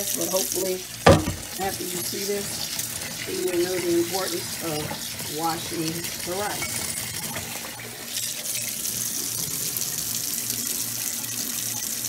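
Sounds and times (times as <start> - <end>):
faucet running into metal sink: 0.0 - 12.0.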